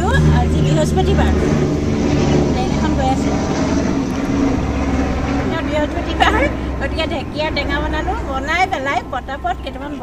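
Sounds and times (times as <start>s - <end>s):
woman talking: 0.0s - 1.7s, 2.3s - 3.8s, 5.4s - 10.0s
steady low hum: 0.0s - 10.0s.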